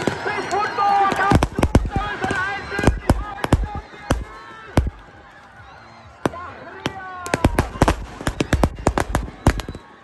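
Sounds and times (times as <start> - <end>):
people shouting and whooping: 0.0 - 10.0
firecrackers cracking: 1.0 - 5.1, 7.2 - 10.0.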